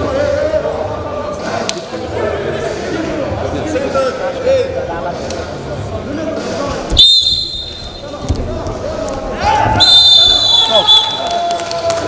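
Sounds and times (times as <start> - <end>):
referee's whistle blasts: 7.0 - 8.1, 9.8 - 11.4.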